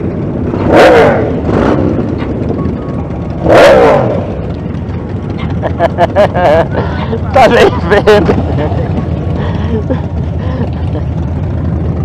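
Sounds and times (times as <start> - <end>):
motorcycle engines idling: 0.0 - 12.0.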